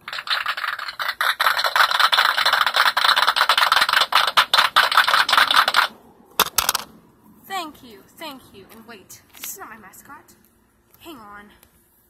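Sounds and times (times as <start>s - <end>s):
crowd clapping: 0.0s - 5.9s.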